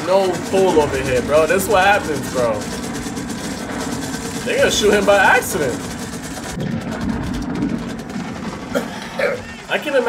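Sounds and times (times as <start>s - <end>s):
low soundtrack rumble: 0.0s - 10.0s.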